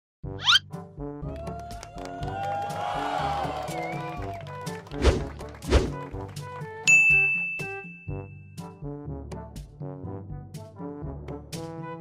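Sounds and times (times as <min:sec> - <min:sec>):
playful background music: 0:00.2 - 0:12.0
bright ding: 0:06.9 - 0:08.4.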